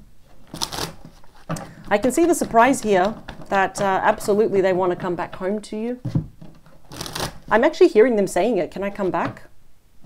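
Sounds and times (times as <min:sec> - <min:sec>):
cards rustling: 0:00.4 - 0:05.5, 0:06.5 - 0:07.5.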